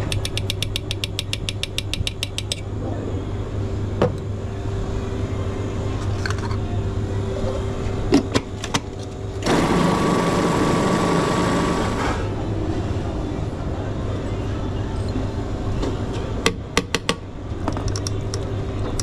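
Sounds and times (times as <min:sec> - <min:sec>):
steady low hum: 0:00.0 - 0:19.0
food processor running: 0:09.4 - 0:12.1.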